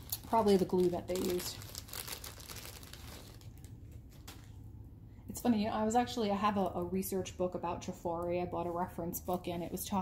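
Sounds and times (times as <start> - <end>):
faint crinkling and rustling: 0.0 - 4.6.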